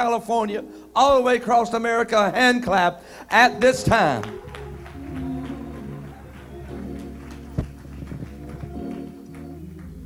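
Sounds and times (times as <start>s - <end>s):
sustained organ chords: 0.0s - 10.0s
low bass notes: 4.4s - 10.0s.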